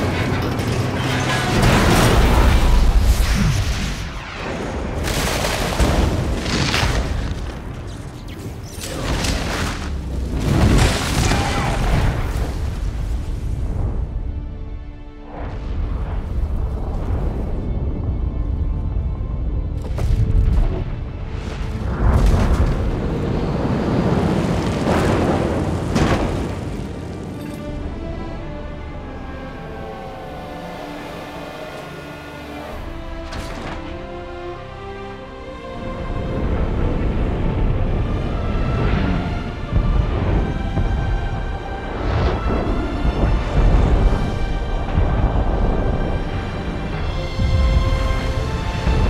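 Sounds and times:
metal grinding creaking and crashing: 0.0s - 2.8s
orchestral film score: 0.0s - 49.0s.

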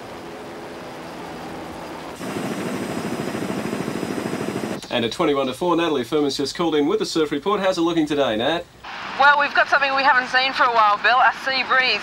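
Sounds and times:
helicopter rotor beating: 0.0s - 5.1s
helicopter turbine whine: 0.0s - 5.3s.

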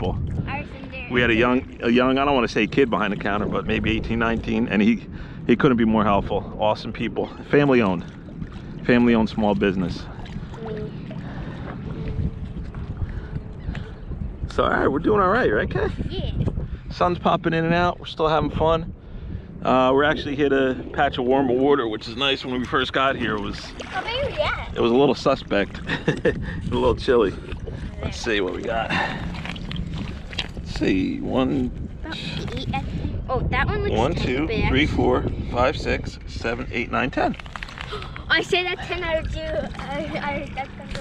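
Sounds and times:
water sloshing from wading: 0.0s - 14.5s, 21.2s - 34.8s, 37.1s - 41.0s
wind buffeting microphone: 0.0s - 41.0s.

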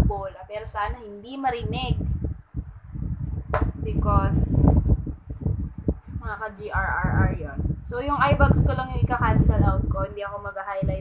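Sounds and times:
dull rumble: 0.0s - 11.0s
sharp knock: 3.5s - 3.8s.

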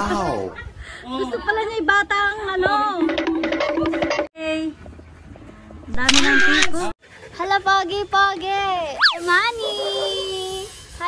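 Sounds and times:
camera shutter click: 6.0s - 6.8s.

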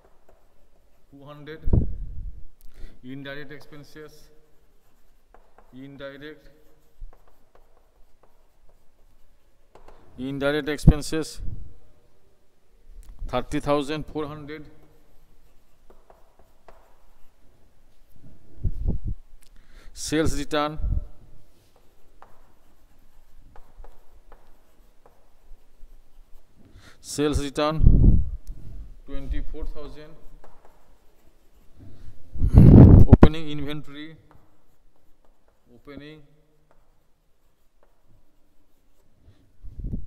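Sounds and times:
chalk tapping and scratching on blackboard: 0.0s - 1.6s, 3.1s - 11.8s, 13.2s - 27.8s, 28.4s - 40.0s.

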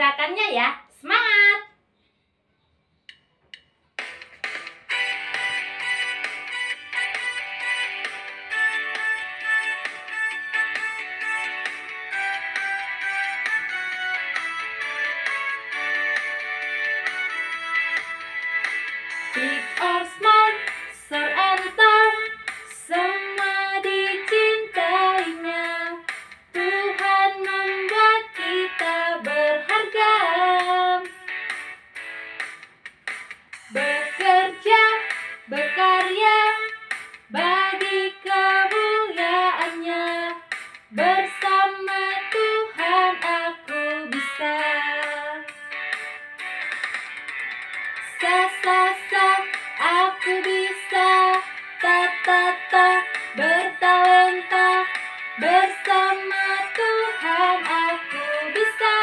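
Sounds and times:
woman singing: 19.3s - 31.2s, 33.7s - 45.5s, 48.0s - 59.0s.

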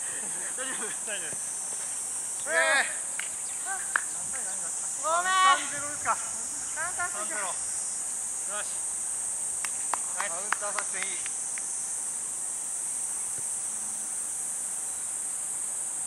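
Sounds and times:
cicadas shrilling: 0.0s - 16.0s
distant shouts: 2.4s - 7.7s.

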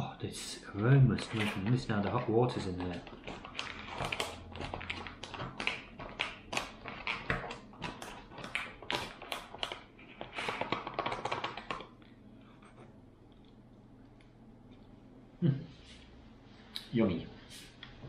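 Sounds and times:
spoon scraping in food pouch: 1.2s - 11.8s
foil pouch crinkling: 1.2s - 12.0s.

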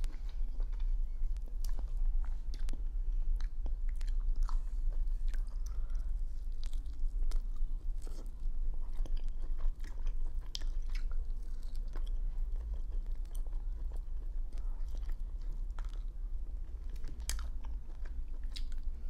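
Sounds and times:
chewing and mouth smacks: 0.0s - 19.0s
steady low hum: 0.0s - 19.0s.

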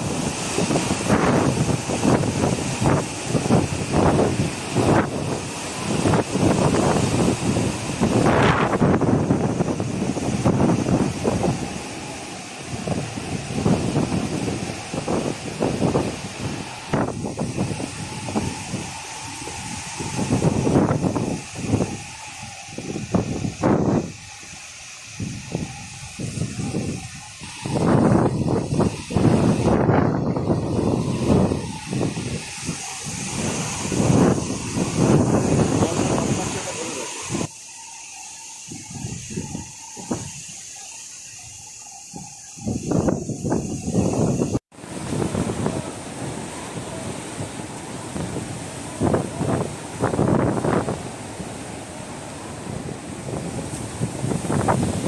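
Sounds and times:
surf breaking: 0.0s - 37.5s
strong wind buffeting microphone: 0.0s - 55.0s.

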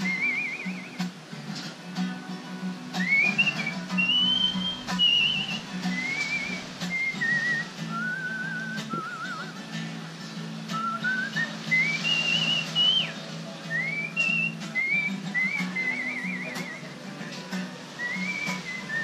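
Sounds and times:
person whistling a tune: 0.0s - 1.1s, 3.0s - 9.6s, 10.7s - 17.0s, 17.9s - 19.0s
soft guitar accompaniment: 0.0s - 19.0s.

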